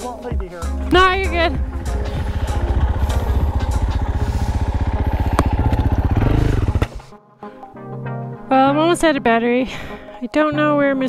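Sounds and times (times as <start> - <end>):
motorcycle engine revving: 0.8 - 7.1.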